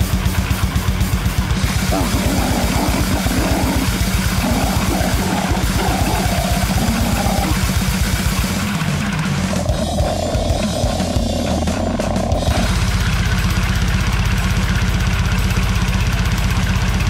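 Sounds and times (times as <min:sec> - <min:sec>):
rock band drums and guitar: 0:00.0 - 0:13.6.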